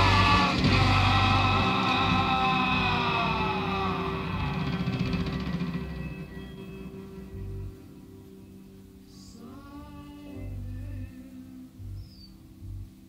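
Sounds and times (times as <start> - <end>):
rock band sustained chord: 0.0 - 11.6
steady low bass note: 0.0 - 13.0.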